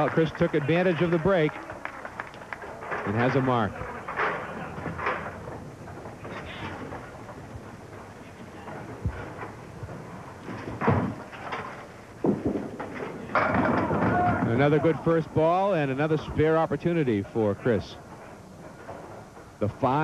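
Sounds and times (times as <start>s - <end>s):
bowling pins clattering: 2.5s - 20.0s
bowling ball thud and roll: 4.1s - 15.2s.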